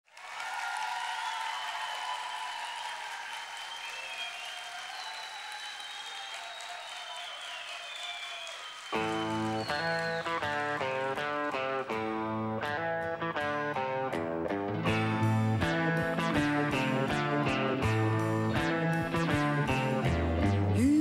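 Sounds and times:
audience applauding and cheering: 0:00.0 - 0:14.2
song with pitched chords: 0:14.8 - 0:21.0.

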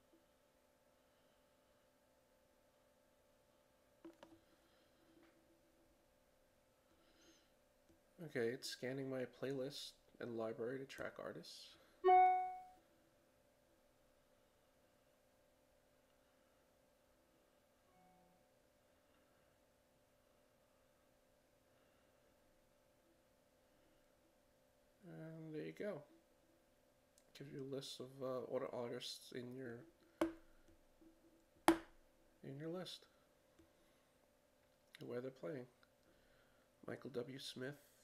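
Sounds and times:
chime-like note: 0:12.0 - 0:12.7
mouse button clicks: 0:12.1 - 0:12.6.

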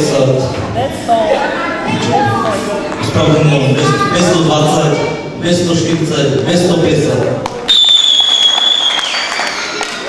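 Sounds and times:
small group clapping: 0:07.4 - 0:10.0
high whistle dropping in pitch: 0:07.7 - 0:09.6.

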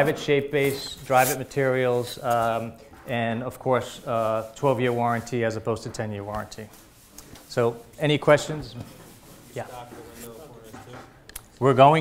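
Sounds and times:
close rubbing noise: 0:00.0 - 0:12.0.

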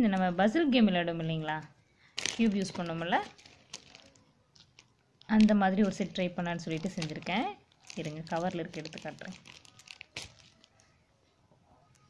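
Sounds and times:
plastic packaging crinkling: 0:02.0 - 0:11.1.

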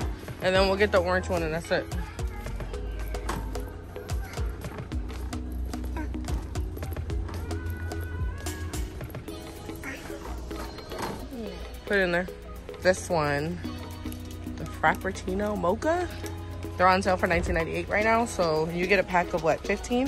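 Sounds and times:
background music with low bass: 0:00.0 - 0:20.0.

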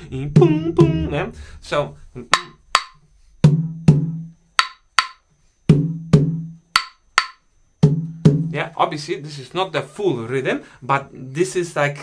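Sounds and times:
person speaking: 0:00.0 - 0:02.4
conga open tones: 0:00.0 - 0:08.7.

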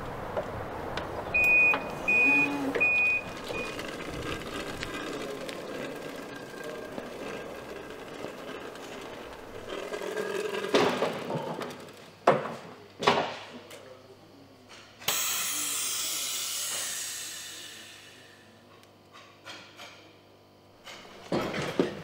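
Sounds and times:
forklift reversing alarm beeps: 0:01.4 - 0:04.1.

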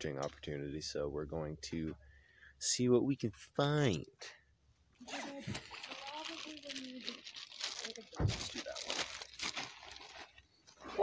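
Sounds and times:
faint talk: 0:05.0 - 0:09.1
crinkling and crunching: 0:05.0 - 0:11.0.

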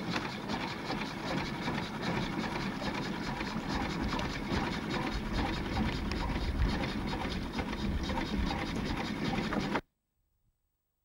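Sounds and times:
boat engine running: 0:00.0 - 0:09.8.

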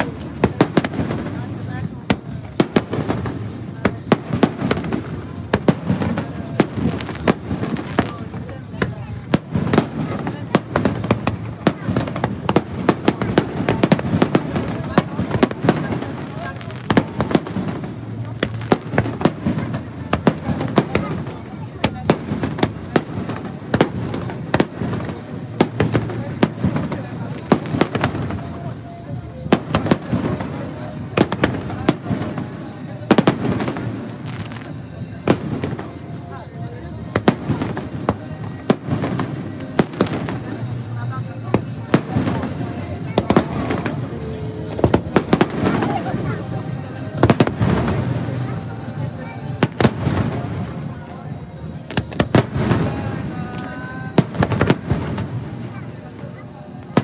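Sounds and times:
fireworks bangs and crackles: 0:00.0 - 0:57.0.

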